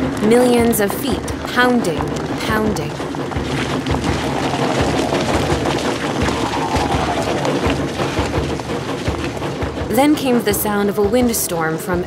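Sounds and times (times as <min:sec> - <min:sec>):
crowd footsteps on pavement: 0:00.0 - 0:12.0
music: 0:00.0 - 0:12.0.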